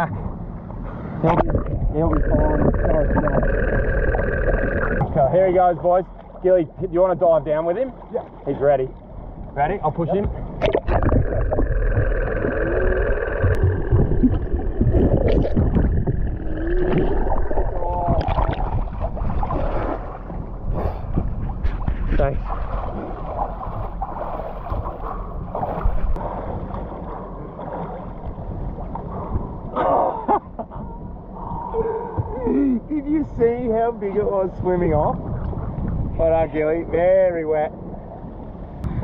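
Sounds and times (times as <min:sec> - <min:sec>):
low rumble: 0:00.0 - 0:39.0
water splashing against boat: 0:00.5 - 0:39.0
underwater bubbling: 0:00.7 - 0:05.3, 0:07.9 - 0:29.8, 0:35.1 - 0:36.2.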